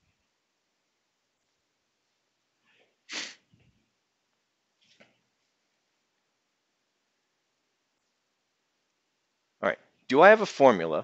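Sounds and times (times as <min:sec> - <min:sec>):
person sneezing: 0:03.1 - 0:03.4
quick intake of breath: 0:03.1 - 0:03.5.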